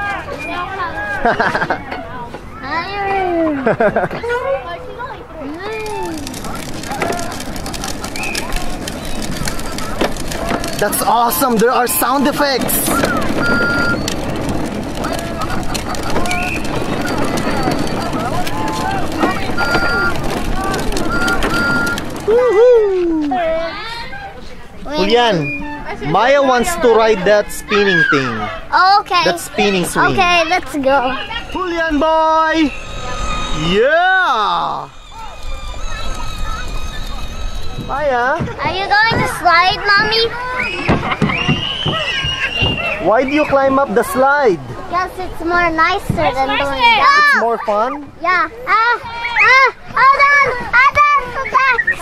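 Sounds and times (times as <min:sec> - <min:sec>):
plastic wheels rolling on concrete: 0:00.0 - 0:52.0
chirping gliding electronic tones: 0:05.6 - 0:22.3, 0:30.8 - 0:38.3
short electronic beeps: 0:13.4 - 0:14.1, 0:19.5 - 0:20.3, 0:21.0 - 0:22.0.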